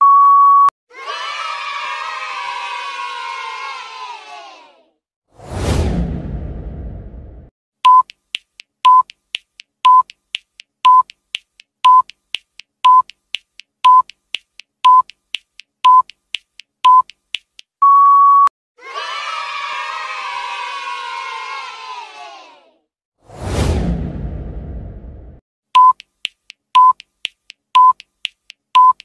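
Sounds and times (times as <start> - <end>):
electronic countdown beeps: 0.0 - 0.7, 7.8 - 8.2, 8.8 - 9.2, 9.8 - 10.2, 10.8 - 11.2, 11.8 - 12.2, 12.8 - 13.2, 13.8 - 14.2, 14.8 - 15.2, 15.8 - 16.2, 16.8 - 17.2, 17.8 - 18.5, 25.8 - 26.1, 26.8 - 27.0, 27.8 - 28.1, 28.8 - 29.0
crowd cheering: 0.9 - 4.9, 18.8 - 22.7
whoosh: 5.3 - 7.5, 23.2 - 25.4
soft ticks: 7.9 - 17.8, 25.8 - 29.0.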